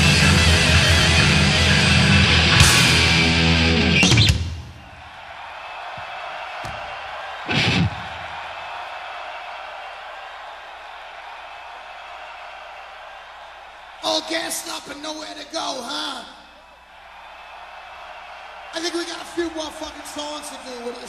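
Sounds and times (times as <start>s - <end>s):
metal band playing live: 0.0s - 4.5s, 7.5s - 8.0s
crowd noise: 0.0s - 21.0s
loud shout: 0.0s - 21.0s.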